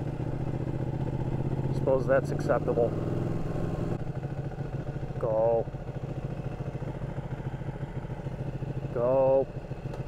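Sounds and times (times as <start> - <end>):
motorcycle engine throbbing: 0.0 - 10.0.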